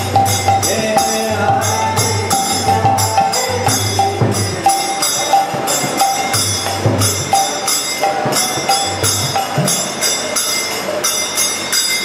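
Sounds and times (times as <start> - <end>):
harmonium: 0.0 - 9.8
hand drum: 0.0 - 10.3
hand cymbals struck: 0.0 - 12.0.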